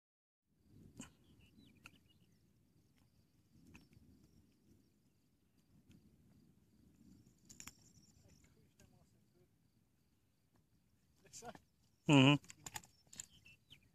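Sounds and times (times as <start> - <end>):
faint outdoor ambience: 0.5 - 13.9.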